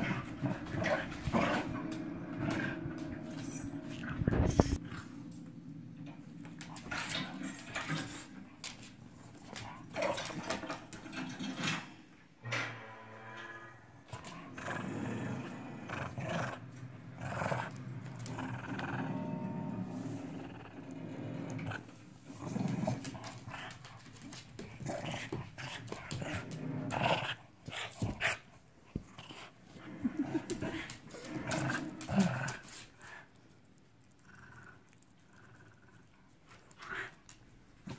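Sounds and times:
small dog growling playfully: 0:14.2 - 0:23.8, 0:29.2 - 0:33.2.

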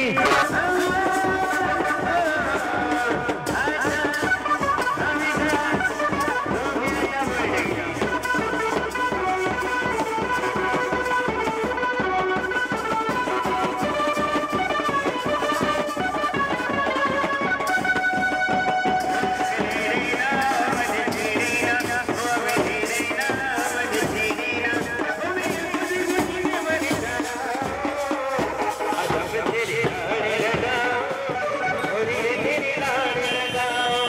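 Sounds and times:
bass drum and side drums: 0:00.0 - 0:34.0.

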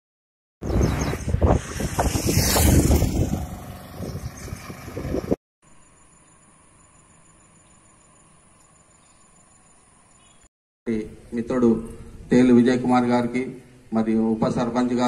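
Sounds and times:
wind buffeting microphone: 0:00.6 - 0:05.4.

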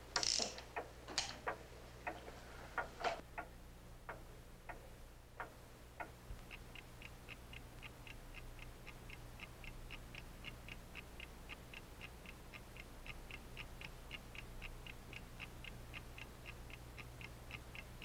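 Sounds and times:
irregular clicks and knocks: 0:00.0 - 0:03.5
wall clock ticking: 0:00.0 - 0:18.0.

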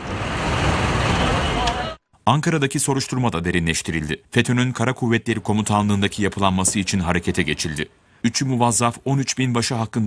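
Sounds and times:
traffic engine rumble: 0:00.0 - 0:02.0.

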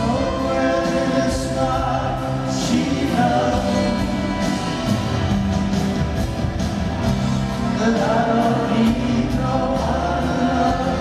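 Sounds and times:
person singing: 0:00.0 - 0:04.8, 0:07.7 - 0:11.0
acoustic guitar: 0:00.0 - 0:11.0
drums: 0:00.0 - 0:11.0
rock band playing slow song: 0:00.0 - 0:11.0.

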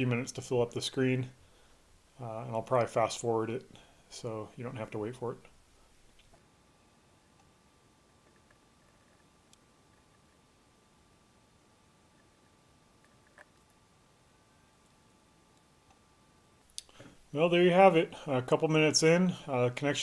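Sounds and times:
faint steady tone: 0:00.0 - 0:20.0.

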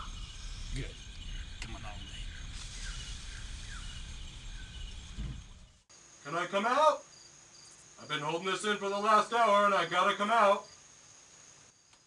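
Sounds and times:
low rumble: 0:00.0 - 0:05.9
insects chirping: 0:00.0 - 0:12.0.

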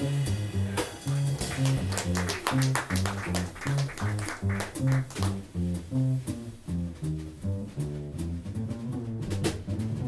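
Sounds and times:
light cymbal and drum strokes: 0:00.0 - 0:01.9
plucked double bass: 0:00.0 - 0:10.0.

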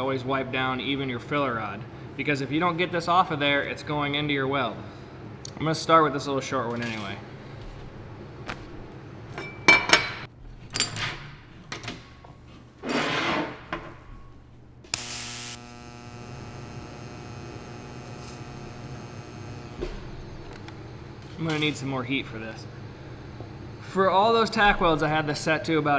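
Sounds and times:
welder click: 0:14.9 - 0:19.8
welding arc crackling and buzzing: 0:14.9 - 0:25.4.

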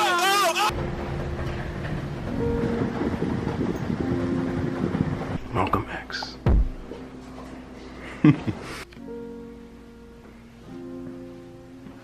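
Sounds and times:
wagon wheels rumbling on floor: 0:00.7 - 0:05.7.

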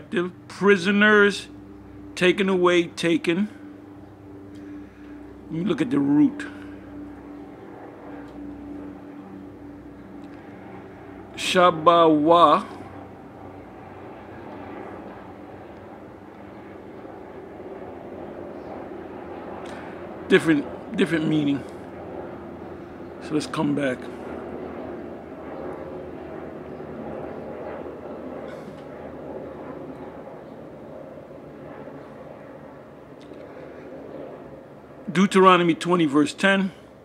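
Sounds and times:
low background hum: 0:00.0 - 0:37.0.

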